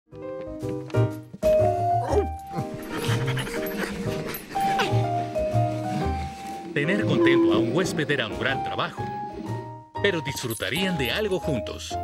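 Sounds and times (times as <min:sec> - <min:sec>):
cartoon music: 0:06.8 - 0:08.6.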